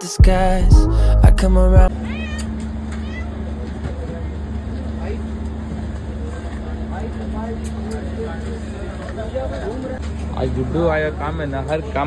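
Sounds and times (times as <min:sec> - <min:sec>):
cat meowing: 0:02.0 - 0:03.4.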